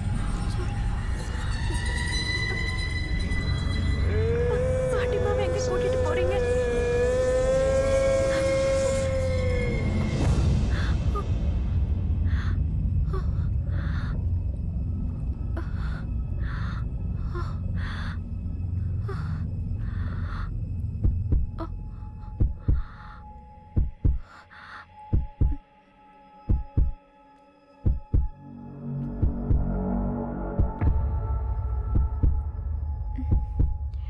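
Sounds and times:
low rumbling drone: 0.0 - 25.6, 27.8 - 34.0
slow heartbeat thumps: 20.8 - 24.3, 25.0 - 25.6, 26.4 - 27.0, 27.8 - 28.4, 29.0 - 34.0.

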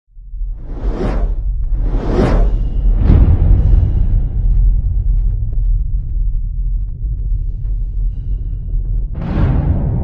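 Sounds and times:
deep rumble: 0.1 - 10.0
cinematic whoosh: 0.5 - 5.3.

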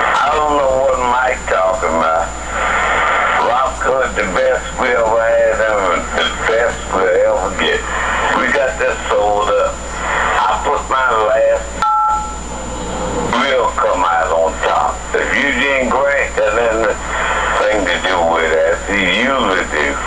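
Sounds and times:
person talking over telephone: 0.0 - 2.4, 3.3 - 11.7, 13.3 - 20.0
faint high whine: 0.0 - 20.0.

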